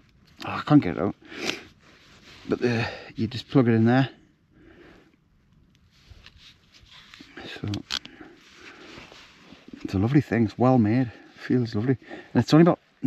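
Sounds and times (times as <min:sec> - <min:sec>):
soft plastic rustling: 0:00.1 - 0:04.0, 0:05.5 - 0:13.0.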